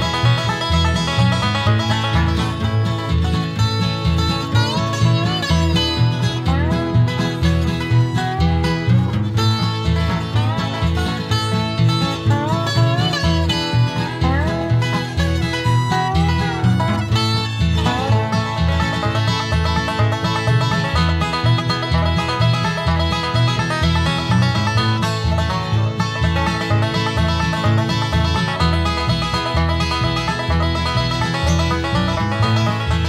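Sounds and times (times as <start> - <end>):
banjo: 0.0 - 33.0
bass: 0.0 - 33.0
bluegrass string band playing: 0.0 - 33.0
guitar: 0.0 - 33.0
sliding lead instrument: 0.0 - 33.0.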